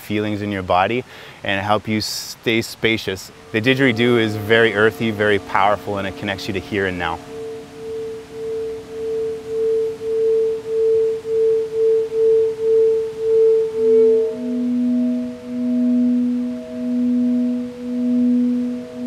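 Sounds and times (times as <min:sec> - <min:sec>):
lower-pitched singing bowl: 0:03.0 - 0:19.0
singing bowl pulsing tone: 0:03.2 - 0:19.0.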